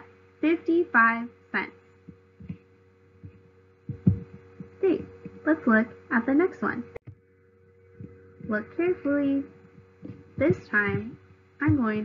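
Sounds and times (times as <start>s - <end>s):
faint electrical hum: 0.0s - 12.0s
woman speaking: 0.4s - 1.7s, 4.8s - 7.0s, 8.4s - 9.5s, 10.4s - 12.0s
low thuds: 2.0s - 5.6s, 7.1s - 12.0s.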